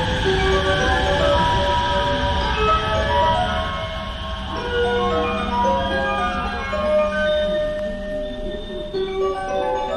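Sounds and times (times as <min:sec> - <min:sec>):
chiming electronic melody: 0:00.0 - 0:09.9
electric train rumbling: 0:00.0 - 0:09.9.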